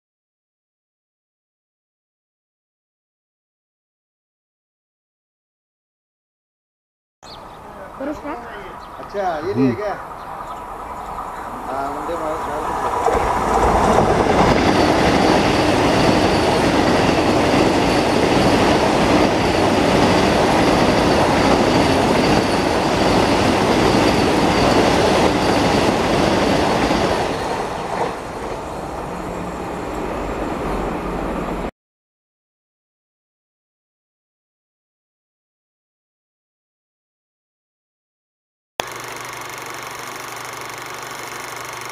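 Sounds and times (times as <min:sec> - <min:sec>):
train wheels rushing on rail: 0:07.7 - 0:31.7.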